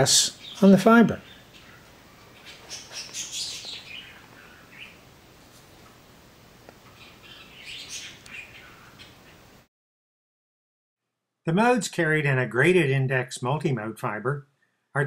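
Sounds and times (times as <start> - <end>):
low steady hiss: 0.0 - 9.7, 11.5 - 15.0
faint high-pitched chirping: 0.1 - 5.1.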